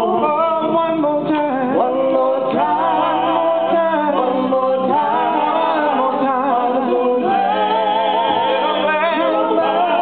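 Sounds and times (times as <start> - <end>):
vocal group singing in harmony: 0.0 - 10.0.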